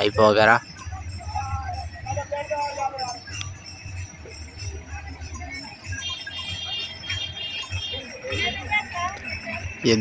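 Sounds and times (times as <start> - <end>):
steady high ringing tone: 0.0 - 10.0.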